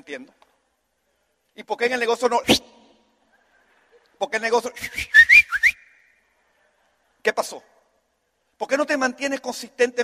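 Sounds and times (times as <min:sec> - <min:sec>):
person whistling rising notes: 0:04.8 - 0:06.1.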